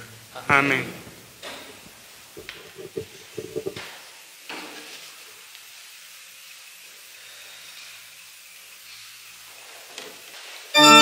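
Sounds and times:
faint steady hiss: 0.0s - 11.0s
soft handling sound: 2.4s - 3.8s.

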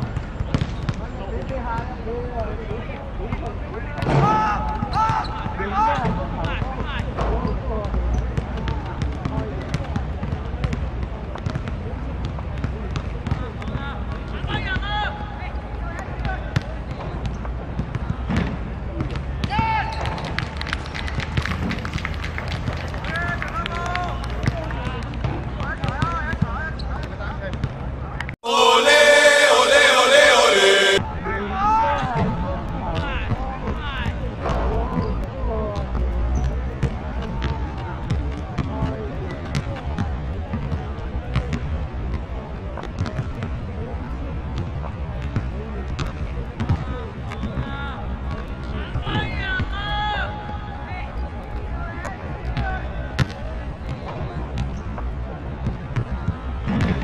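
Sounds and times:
boys shouting: 28.4s - 31.0s
loud musical sting: 28.4s - 31.0s.

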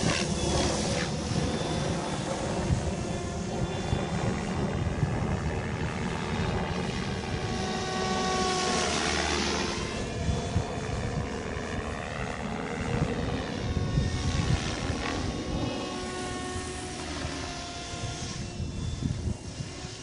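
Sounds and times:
rc helicopter flying overhead: 0.0s - 20.0s.

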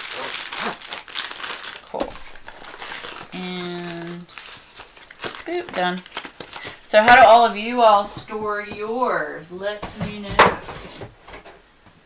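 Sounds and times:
plastic packaging crinkling: 0.0s - 9.0s.

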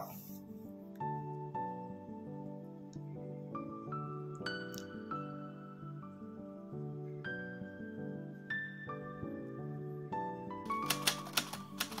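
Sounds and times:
soft background music: 0.0s - 12.0s
typewriter key clicks: 10.7s - 12.0s.

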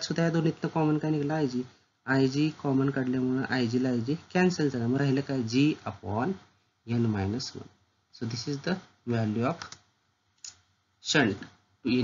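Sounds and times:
man talking: 0.0s - 9.7s, 11.0s - 12.0s.

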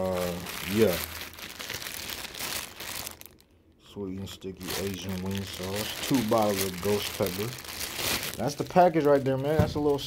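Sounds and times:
plastic bag crinkling: 0.0s - 3.5s, 4.1s - 10.0s.

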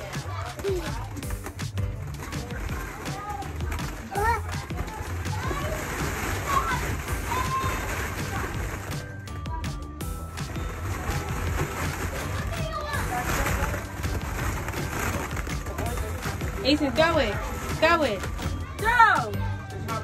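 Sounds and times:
children's voices: 0.0s - 1.3s, 2.1s - 8.8s, 10.9s - 13.9s
plastic balls rattling: 0.0s - 20.0s.

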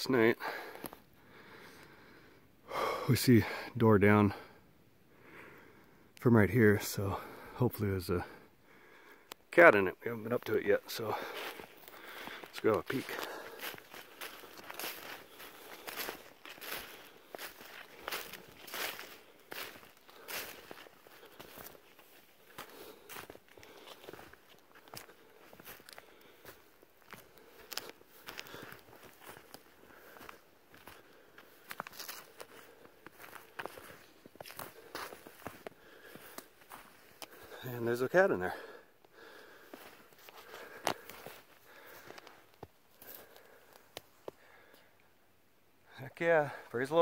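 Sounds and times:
footsteps in snow: 10.9s - 37.6s, 39.4s - 43.6s.

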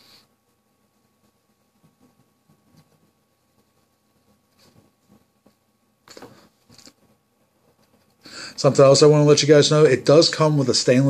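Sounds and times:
breathy exhale puffs: 8.2s - 8.6s.

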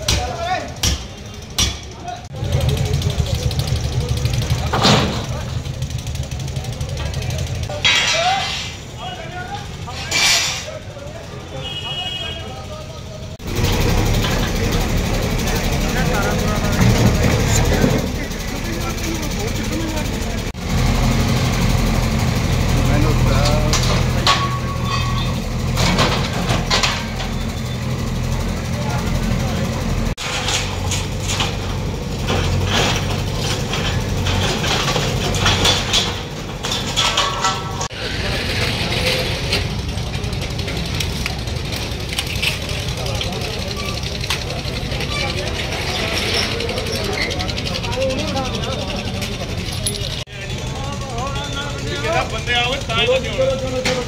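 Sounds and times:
diesel engine running under load: 0.0s - 7.8s, 12.8s - 54.0s
knocks and clanks of breaking structure: 30.2s - 38.0s.

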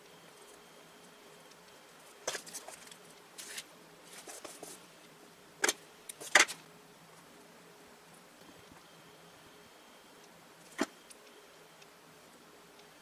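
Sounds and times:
paper rustling and scraping: 2.2s - 4.8s.

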